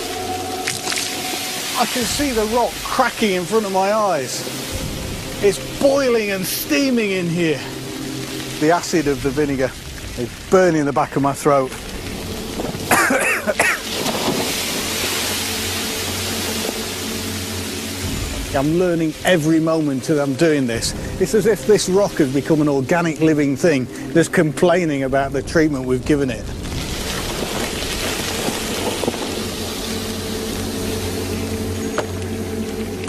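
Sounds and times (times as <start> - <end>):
loud hiss of steam: 0.0 - 22.7.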